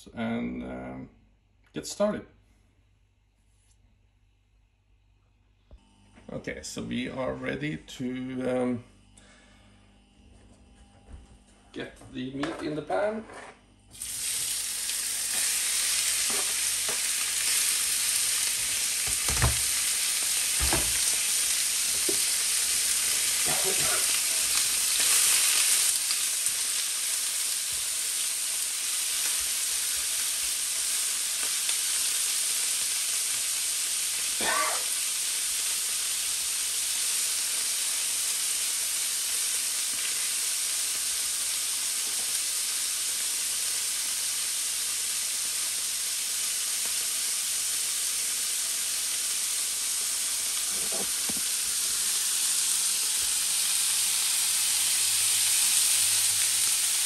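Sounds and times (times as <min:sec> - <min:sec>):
meat sizzling in a frying pan: 0:13.9 - 0:57.0.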